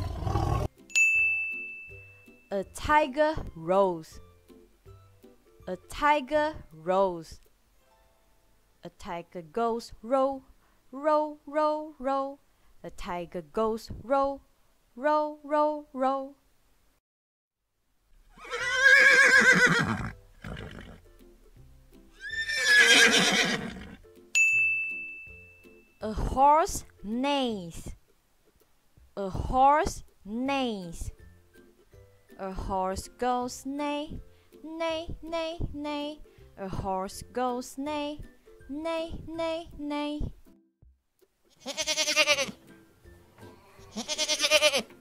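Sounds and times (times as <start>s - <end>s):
horse whinnying: 0.0s - 0.7s, 18.3s - 21.1s, 22.2s - 24.0s, 41.6s - 42.5s, 43.6s - 44.9s
light background music: 0.0s - 16.4s, 18.4s - 45.0s
goat bleating: 41.6s - 42.6s, 43.6s - 44.9s.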